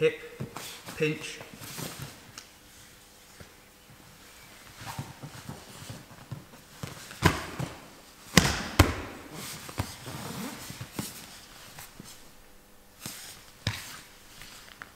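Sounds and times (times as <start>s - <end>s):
clothing rustling: 0.4s - 8.2s, 9.2s - 12.4s, 13.0s - 14.9s
bodies thumping on mats: 4.6s - 12.1s.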